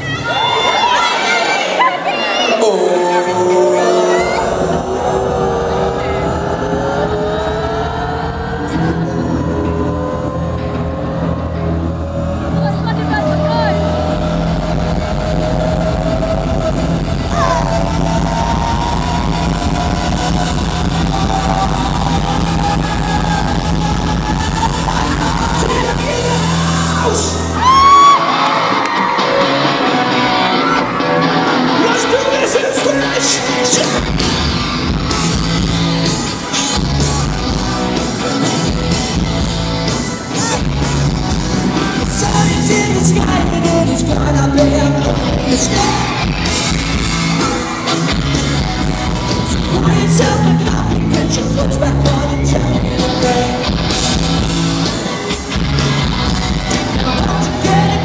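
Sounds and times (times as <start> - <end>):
rock band with drums: 4.1 - 58.0.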